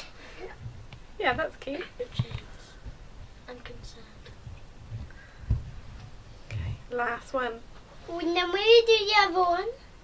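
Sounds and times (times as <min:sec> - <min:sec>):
soft low knocks and thumps: 0:00.5 - 0:06.9.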